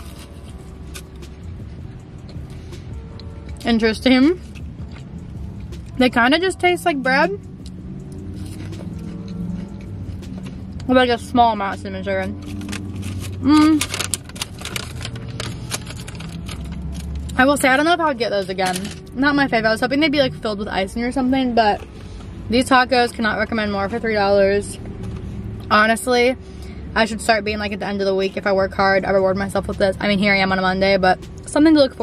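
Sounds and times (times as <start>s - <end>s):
low steady hum: 0.0s - 32.0s
car engine idling: 0.1s - 32.0s
paper bag crinkling: 12.4s - 17.3s.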